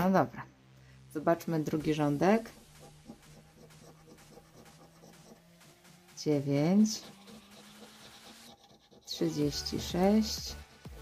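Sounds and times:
spoon scraping scratch card: 1.8 - 10.4.

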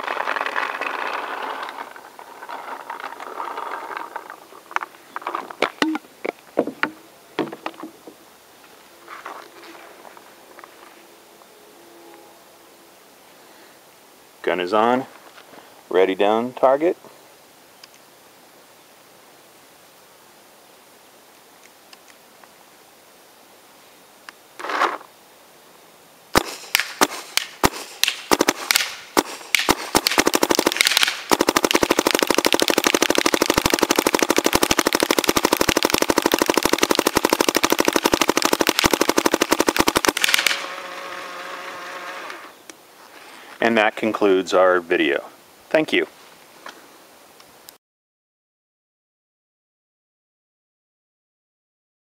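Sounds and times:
paintball marker firing: 26.4 - 40.7.

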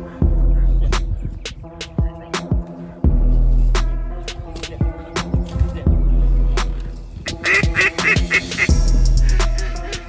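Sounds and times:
background music with steady beat: 0.0 - 10.0
duck call quacks: 7.3 - 9.9.

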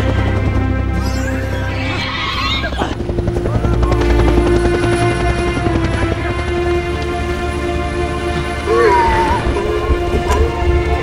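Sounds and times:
film score music: 0.0 - 11.0
helicopter rotors chopping: 0.0 - 11.0.

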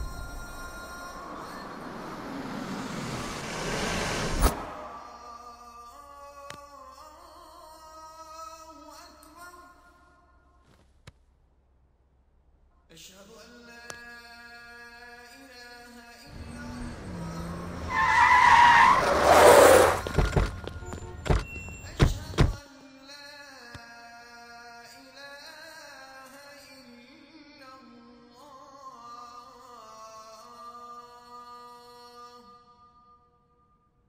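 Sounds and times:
low engine hum: 0.0 - 5.5, 16.3 - 18.1, 18.9 - 22.6
loud sharp bang: 0.0 - 5.6
car approaching: 0.0 - 5.7, 16.3 - 22.6.

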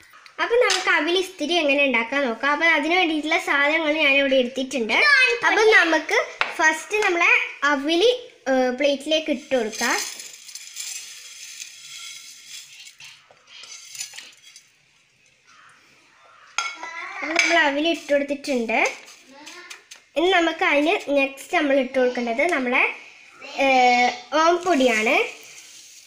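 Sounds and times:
dry rice scraped off a plate: 9.6 - 14.6, 24.6 - 26.0
small taps and scrapes: 18.9 - 20.1.

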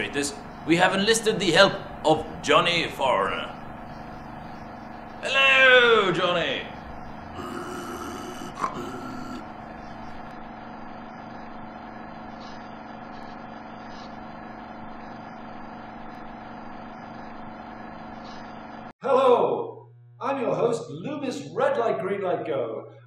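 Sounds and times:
hum of held tones: 1.8 - 11.8, 19.0 - 20.6
man groaning and gasping: 7.3 - 9.5.

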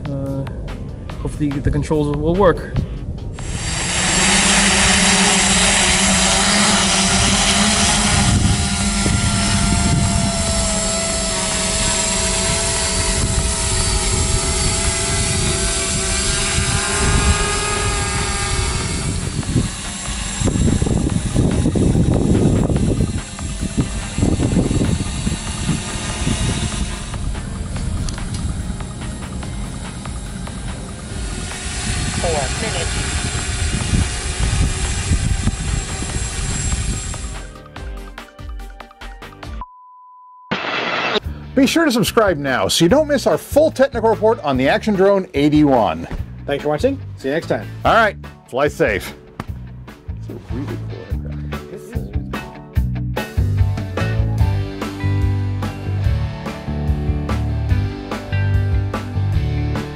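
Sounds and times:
uneven low rumbling: 0.0 - 37.5
quadcopter motors humming: 3.1 - 38.0, 54.0 - 59.9.

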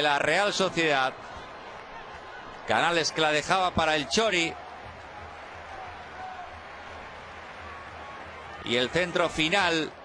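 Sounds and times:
stadium crowd noise: 0.0 - 10.0.

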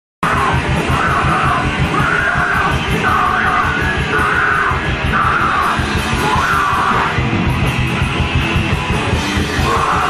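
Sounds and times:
shouted vocals: 0.2 - 7.3, 9.4 - 10.0
distorted guitars: 0.2 - 10.0
fast pounding drums: 0.2 - 10.0.

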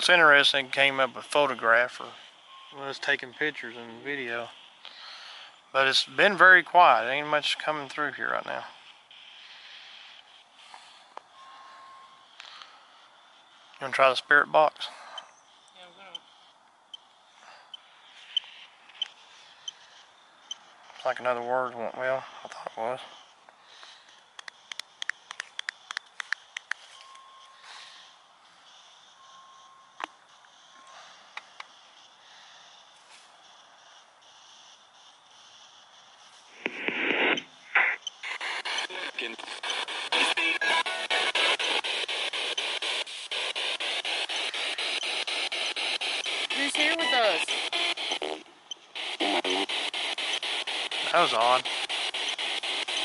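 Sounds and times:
hissing radio static sweeping: 0.0 - 11.2, 12.2 - 14.9, 20.9 - 23.3, 31.7 - 53.0
broken broadcast music: 0.0 - 11.4, 31.4 - 53.0
broken broadcast voices: 0.0 - 11.4, 12.2 - 15.0, 18.0 - 26.7, 35.3 - 53.0.

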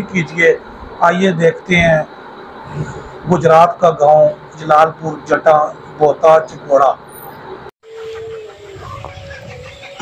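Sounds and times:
distant bird call: 6.5 - 10.0.

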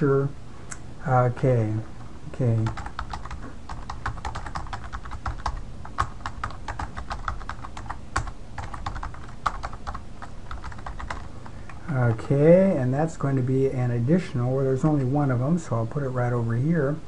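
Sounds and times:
faint low hum: 0.0 - 17.0
typing on computer keyboard: 2.6 - 11.3.

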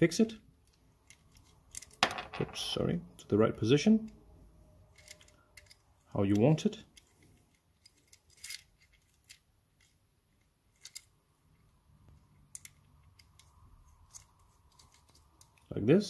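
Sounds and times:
small metal lock parts clicking: 0.6 - 2.0, 4.9 - 11.7, 12.3 - 15.7.

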